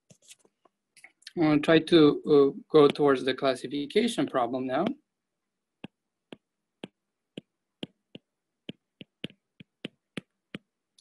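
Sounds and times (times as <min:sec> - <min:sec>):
stylus tapping on glass screen: 0:05.8 - 0:10.7.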